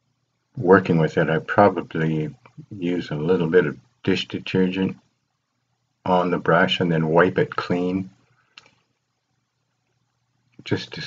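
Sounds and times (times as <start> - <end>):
low steady hum: 0.6 - 5.0, 6.1 - 8.3, 10.6 - 11.0.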